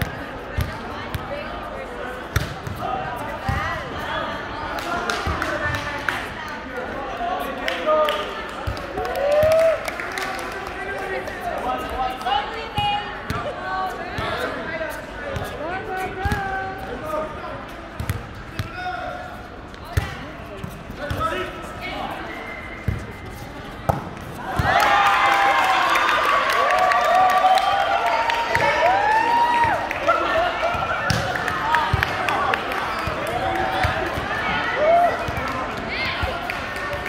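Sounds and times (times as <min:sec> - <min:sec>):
players chattering and calling: 0:00.0 - 0:26.6, 0:27.4 - 0:37.0.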